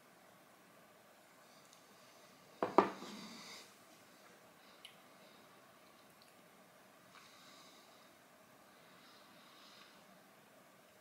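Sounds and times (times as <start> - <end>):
glass knocking on hard surface: 2.6 - 3.0.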